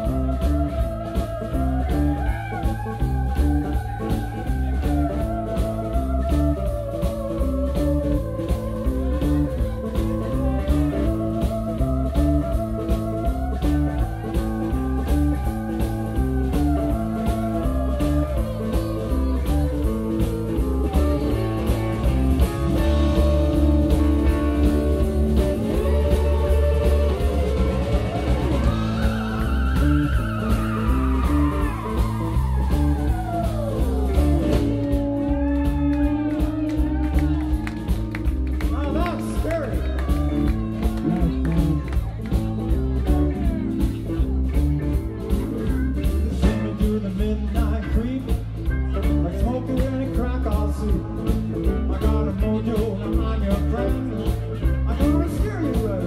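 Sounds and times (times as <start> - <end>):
blues-rock band playing: 0.0 - 56.0.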